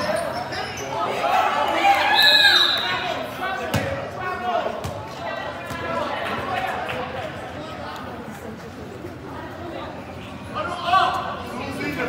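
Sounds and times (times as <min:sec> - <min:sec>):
sneakers squeaking on floor: 0:00.0 - 0:01.2.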